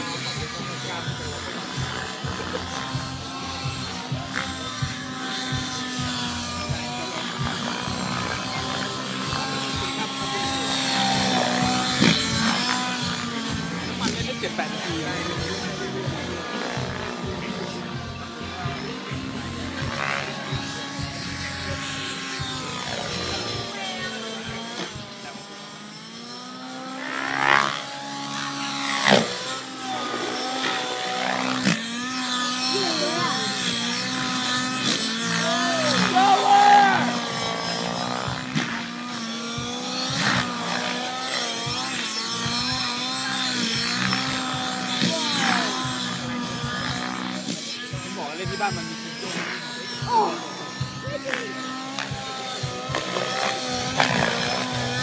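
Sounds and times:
rc helicopter engine buzzing: 0.0 - 55.0
rotor blade whooshes: 0.0 - 55.0.

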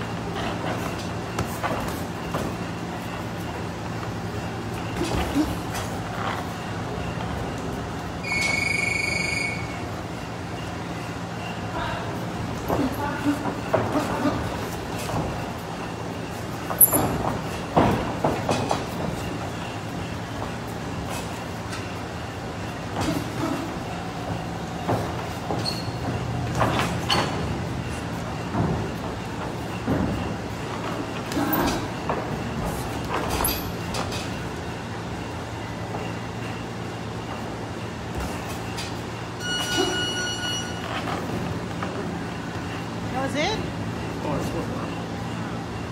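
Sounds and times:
footwork on ring canvas: 0.0 - 8.1, 11.4 - 42.8
steady rumbling gym noise: 0.0 - 45.9
high squeal: 8.2 - 9.9.

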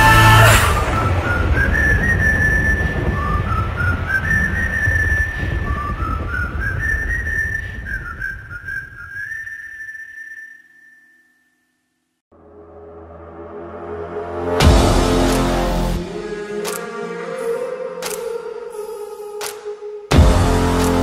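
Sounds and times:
low rumbling bass: 0.0 - 8.1, 12.3 - 16.6, 20.1 - 21.0
whistled melody: 0.0 - 11.5.

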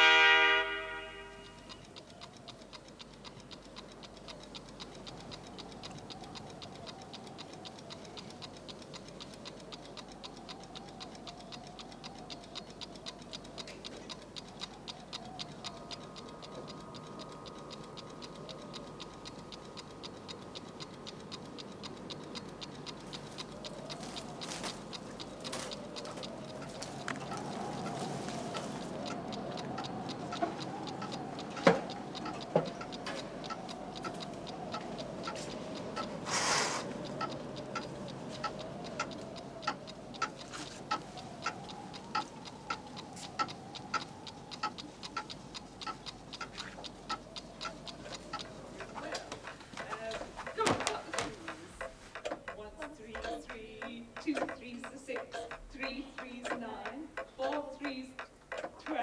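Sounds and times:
faint steady high tone: 0.0 - 2.4
clocks ticking: 0.0 - 59.0.

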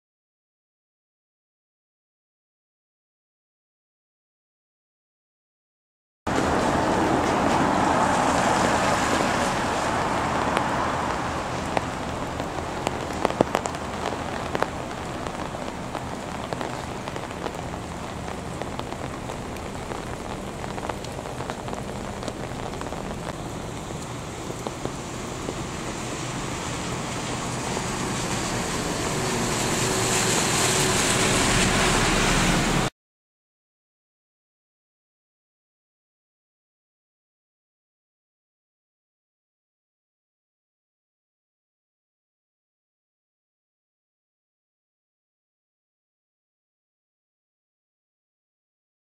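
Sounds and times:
rain hissing on wet street: 6.3 - 32.9
raindrop clicks: 8.4 - 29.1.

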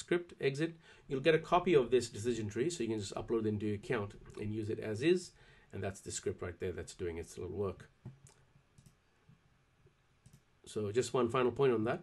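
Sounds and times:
faint computer mouse clicks: 8.0 - 9.0, 10.2 - 10.5.

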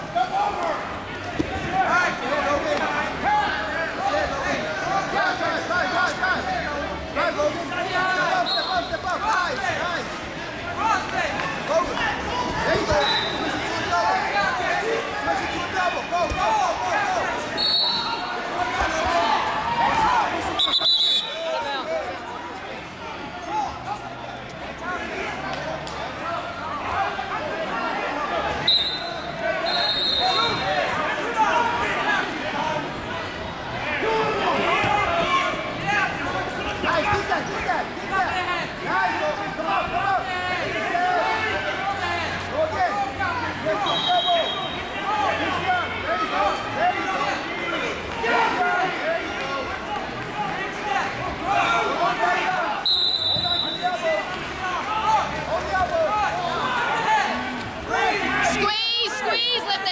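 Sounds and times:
crowd talking and shouting: 0.0 - 59.9
referee whistle blasts: 17.6 - 18.1, 20.6 - 21.4, 28.6 - 30.6, 43.8 - 44.9, 52.8 - 53.9.

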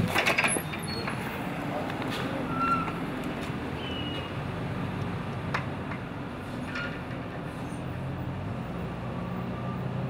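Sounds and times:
street traffic hum: 0.0 - 10.0.

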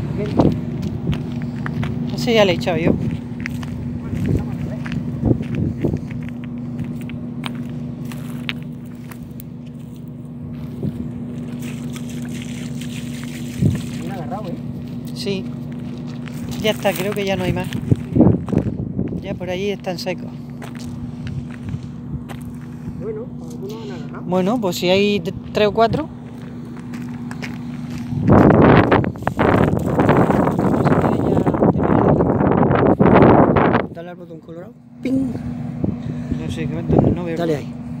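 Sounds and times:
gusty wind noise: 0.0 - 6.4, 17.3 - 19.5, 27.8 - 34.0, 35.4 - 37.2
footsteps and hands in dry scrub: 0.0 - 31.8
constant hum: 0.0 - 38.0
low rumble: 0.0 - 38.0.

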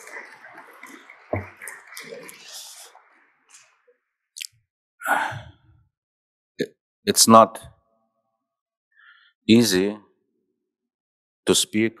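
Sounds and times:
man sighing into microphone: 5.0 - 5.6.

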